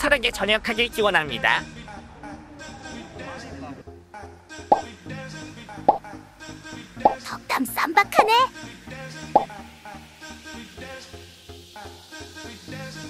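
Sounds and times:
background music: 0.0s - 13.0s
sharp pops: 9.4s - 9.6s.

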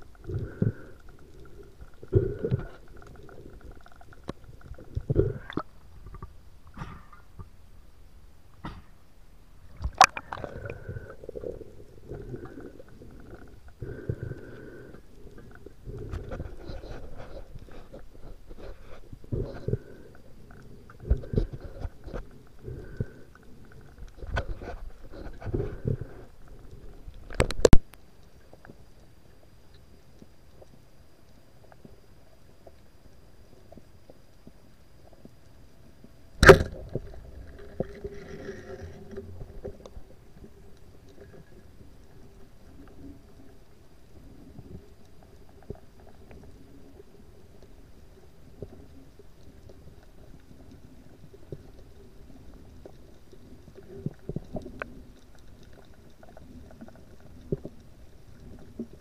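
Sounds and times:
faint steady hum: 0.0s - 59.0s
underwater rumbling and swishing: 0.0s - 59.0s
faint clicks: 12.1s - 59.0s
speargun firing underwater: 36.4s - 36.8s.

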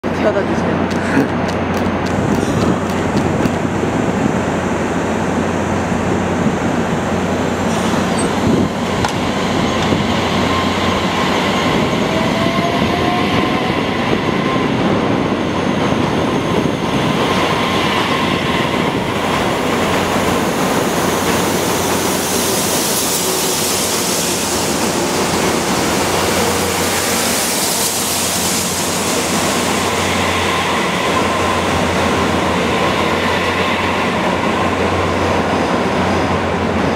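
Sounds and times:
electric train whine: 0.3s - 36.9s.

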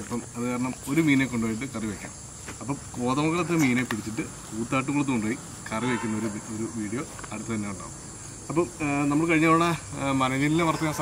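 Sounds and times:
insects chirring: 0.0s - 11.0s
man talking: 0.0s - 11.0s.

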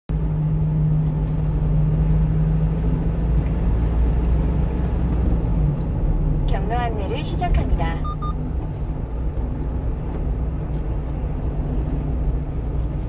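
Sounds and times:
truck engine and road rumble: 0.1s - 13.0s.

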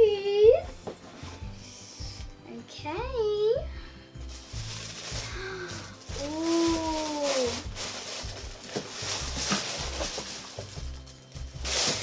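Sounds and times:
tissue paper rustling: 4.2s - 12.0s
person saying ooh: 6.2s - 7.6s.

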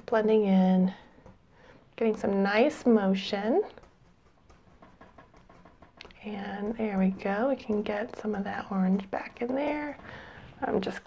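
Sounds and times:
paintbrush scratching paint: 0.0s - 11.0s.

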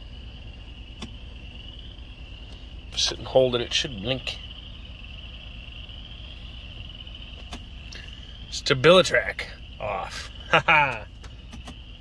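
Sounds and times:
constant high-pitched whine: 0.0s - 12.0s
low steady rumble: 0.0s - 12.0s.

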